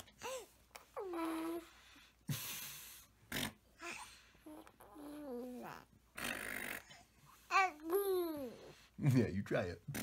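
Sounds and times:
baby cooing: 0:03.8 - 0:05.9, 0:07.5 - 0:08.7.

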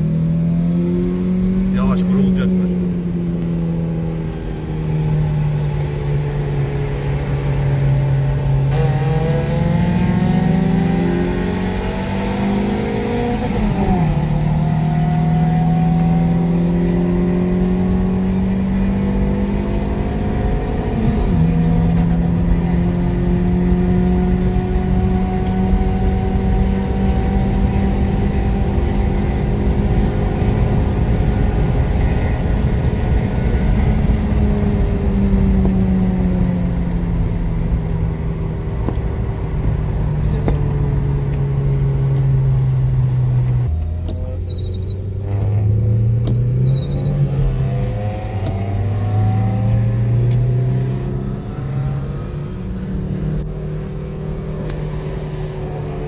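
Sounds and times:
car engine accelerating hard: 0:00.0 - 0:56.0.

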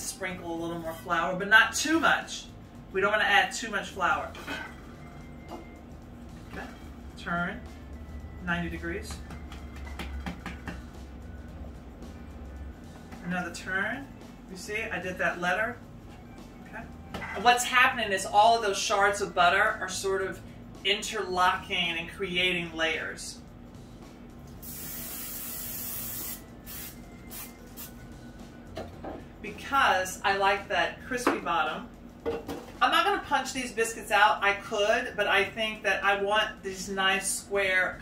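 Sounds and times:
low steady hum: 0:00.0 - 0:25.5
hands tapping dough on wooden board: 0:09.2 - 0:10.9
aerosol oil spray hissing: 0:24.6 - 0:27.9.

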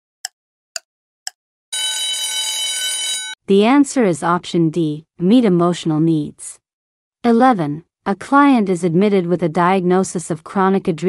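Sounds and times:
alarm-like ringing tone: 0:01.7 - 0:03.4.

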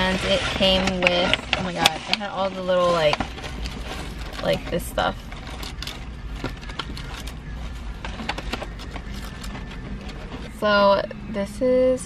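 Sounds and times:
paper bag rustling and crackling: 0:00.0 - 0:10.6.

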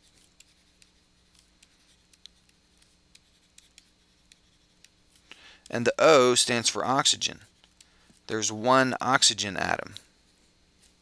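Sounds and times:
stylus scratching on pen tablet: 0:00.0 - 0:04.9
faint steady hum: 0:00.0 - 0:11.0.

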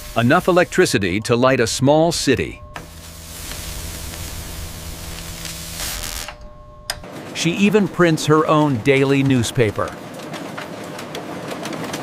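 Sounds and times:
hiss of flying sparks: 0:00.0 - 0:00.8, 0:02.8 - 0:06.4
electrical machinery humming: 0:00.0 - 0:12.0.

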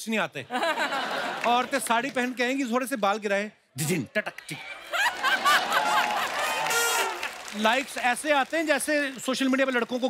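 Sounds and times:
studio audience laughing: 0:00.5 - 0:02.4, 0:04.5 - 0:06.7.

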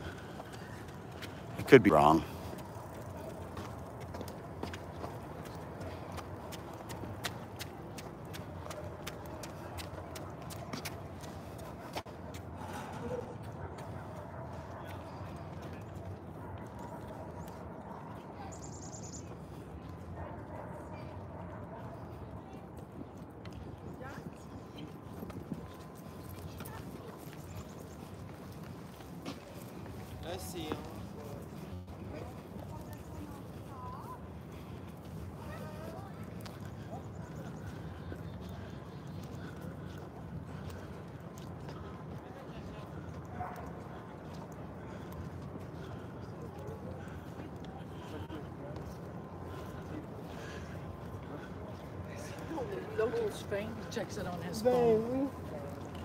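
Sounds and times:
city background noise: 0:00.0 - 0:56.0
distant voices: 0:00.0 - 0:56.0
footsteps on paved path: 0:00.0 - 0:56.0.

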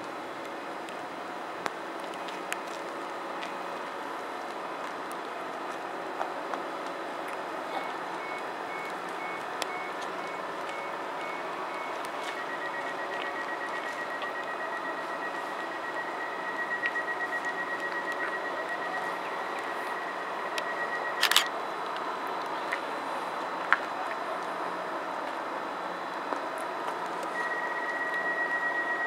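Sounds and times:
train door warning beeps: 0:07.7 - 0:21.5, 0:27.2 - 0:29.0.

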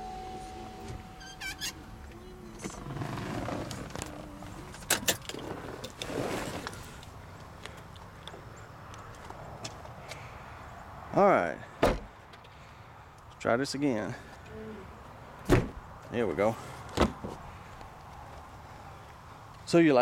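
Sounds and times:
car door opening click: 0:00.6 - 0:01.8
rustling movement: 0:00.8 - 0:08.2.

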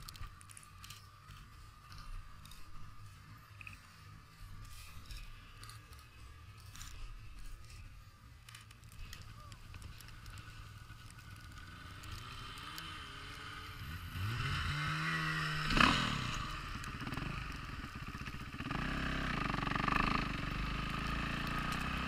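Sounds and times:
dirt bike engine revving: 0:11.2 - 0:22.0.

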